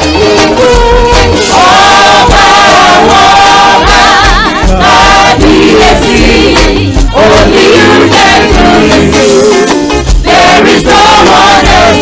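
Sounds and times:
band with bass and drums: 0:00.0 - 0:12.0
choir singing in harmony: 0:00.0 - 0:12.0.

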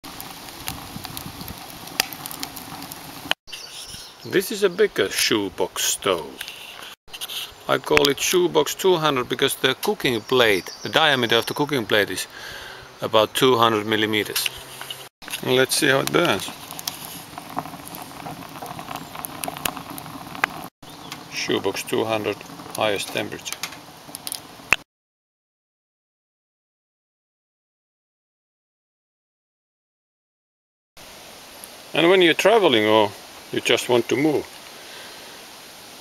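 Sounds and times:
sharp pops of fire: 0:00.0 - 0:03.4, 0:14.3 - 0:24.8
wood fire crackling: 0:00.0 - 0:24.8, 0:31.0 - 0:36.0
steady hiss: 0:31.0 - 0:36.0.

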